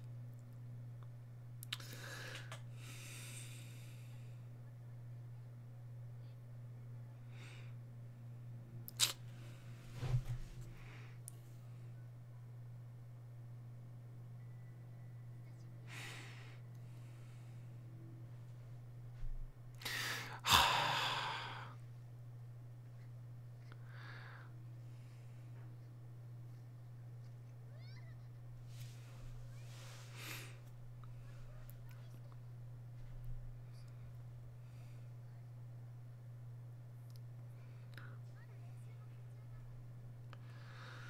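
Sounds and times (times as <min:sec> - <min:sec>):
steady low hum: 0:00.0 - 0:41.0
man sighing: 0:19.8 - 0:21.8.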